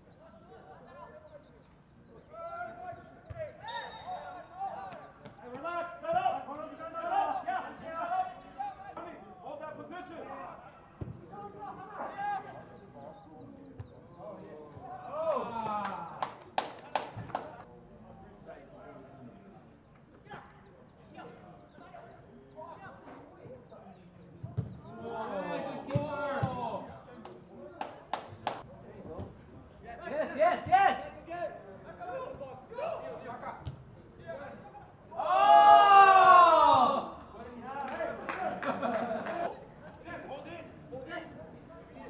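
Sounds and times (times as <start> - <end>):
players shouting: 34.5 - 41.4.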